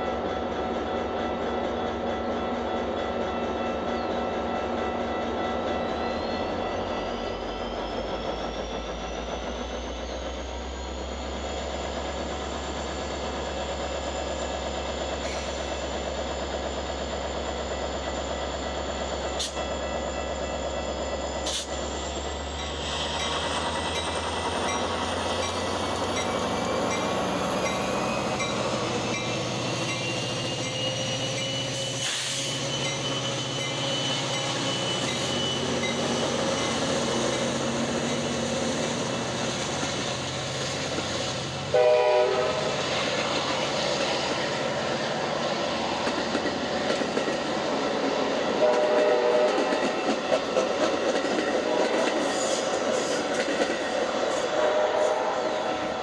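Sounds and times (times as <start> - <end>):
diesel locomotive engine: 0.0 - 56.0
train wheels clicking over rail joints: 21.4 - 41.7, 42.6 - 54.5
train horn: 41.7 - 42.8, 48.5 - 49.8, 54.4 - 55.7.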